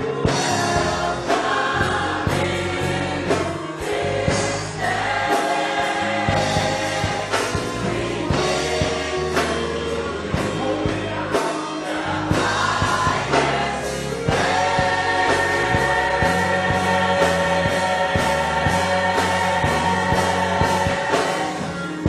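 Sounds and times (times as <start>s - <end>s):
low bass notes: 0.0s - 5.3s, 6.0s - 11.4s, 12.1s - 22.0s
drums: 0.0s - 22.0s
gospel choir singing: 0.0s - 22.0s.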